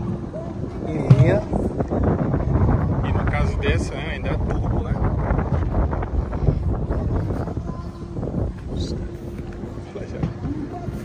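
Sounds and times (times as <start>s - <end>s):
faint hum: 0.0s - 11.0s
indistinct chatter: 0.0s - 11.0s
low steady rumble: 0.0s - 11.0s.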